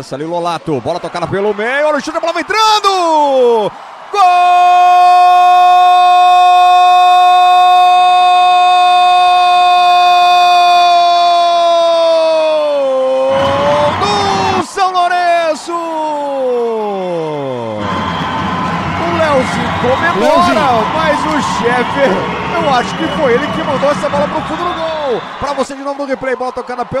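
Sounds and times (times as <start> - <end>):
sports commentator shouting: 0.8 - 17.8, 19.2 - 27.0
noisy background: 17.8 - 25.8.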